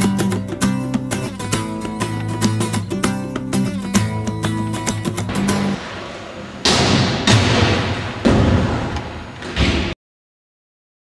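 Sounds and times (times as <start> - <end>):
skate wheels rolling: 5.3 - 9.7.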